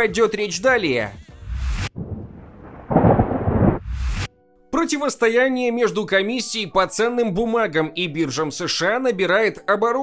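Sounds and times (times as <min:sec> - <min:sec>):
thunder crack and rumble: 0:01.9 - 0:04.3
quick whoosh: 0:02.6 - 0:04.3.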